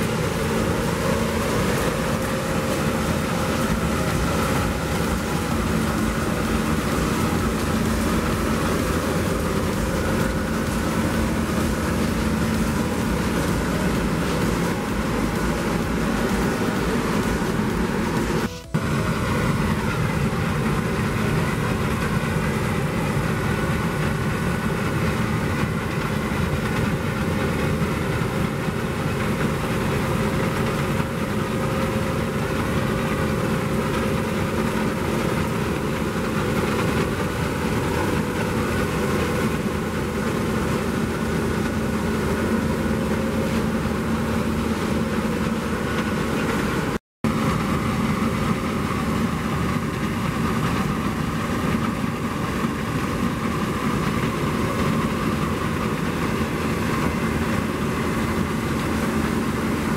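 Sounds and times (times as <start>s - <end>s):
combine harvester running: 0.0s - 59.9s.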